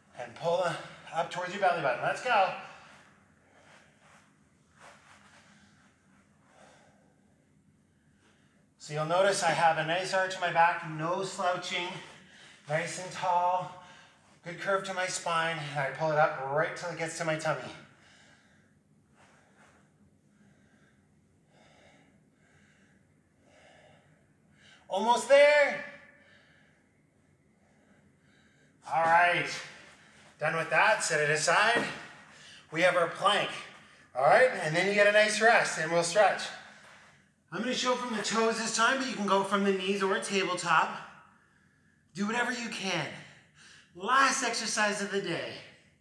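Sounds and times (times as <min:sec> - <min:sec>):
man breathing: 0:02.4 - 0:08.8, 0:11.8 - 0:12.7, 0:13.7 - 0:14.5, 0:17.8 - 0:24.9, 0:26.0 - 0:30.4, 0:31.5 - 0:32.7, 0:33.6 - 0:34.2, 0:36.1 - 0:37.4, 0:40.9 - 0:42.1, 0:43.2 - 0:44.0.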